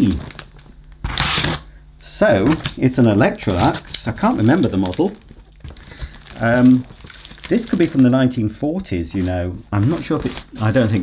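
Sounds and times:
packing tape tearing: 0.0s - 1.7s, 3.4s - 8.2s, 9.9s - 11.0s.

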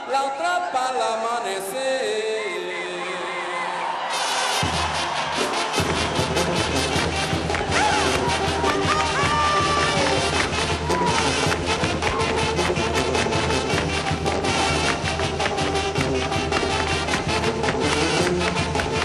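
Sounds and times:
person singing: 0.0s - 4.5s
crowd cheering: 0.0s - 19.0s
brass band dance music: 2.4s - 19.0s.

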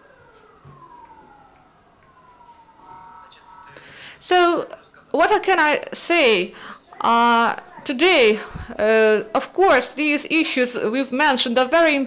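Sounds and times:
faint wailing falling tone: 0.0s - 3.8s.

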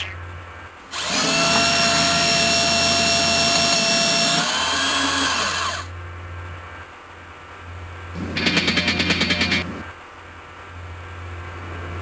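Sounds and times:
small electric motor whining: 0.9s - 5.9s.

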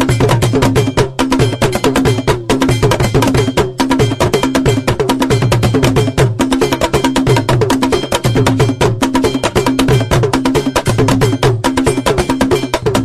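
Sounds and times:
metal bell struck rapidly: 0.0s - 13.0s
pitched drums pattern: 0.0s - 13.0s.

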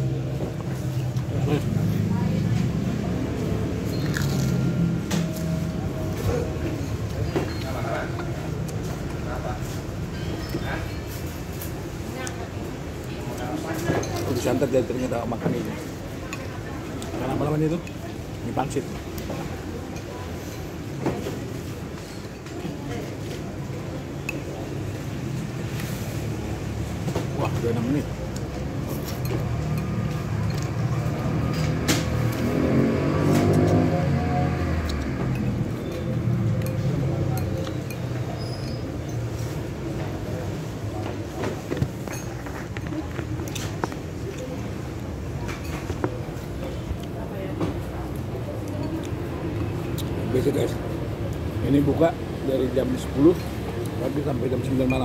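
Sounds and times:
road traffic rumble: 0.0s - 55.0s
vehicle passing: 28.8s - 38.3s.

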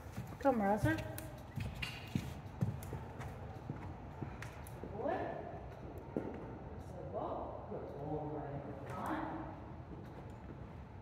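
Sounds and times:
horse hooves on sand: 0.0s - 6.7s.

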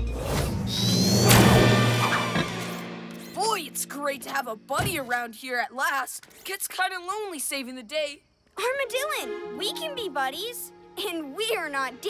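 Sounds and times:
background music: 0.0s - 5.4s, 8.6s - 12.0s
rising whistle ending in crash: 0.1s - 2.9s.

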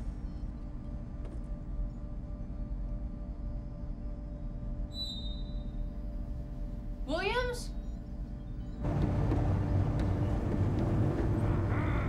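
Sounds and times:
low hum inside train car: 0.0s - 12.0s
train rumbling at speed: 8.8s - 12.0s.

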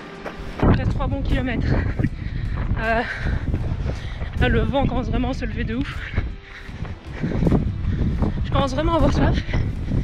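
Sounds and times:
wind buffeting microphone: 0.4s - 10.0s.

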